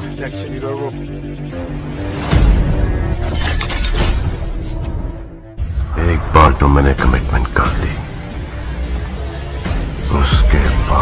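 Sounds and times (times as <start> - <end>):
film music: 0.0 - 11.0
crashing and shattering: 3.2 - 4.4.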